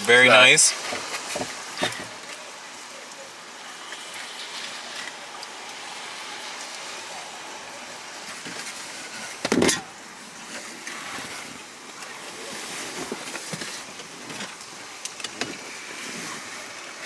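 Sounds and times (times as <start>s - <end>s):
rain on a car: 0.0s - 17.0s.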